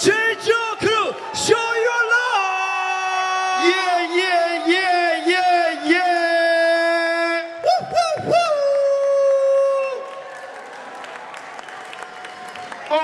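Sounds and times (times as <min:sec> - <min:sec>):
audience crowd noise: 0:00.0 - 0:13.0.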